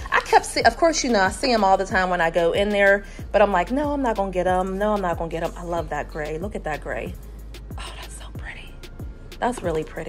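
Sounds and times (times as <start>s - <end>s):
whispered speech: 7.8s - 8.8s.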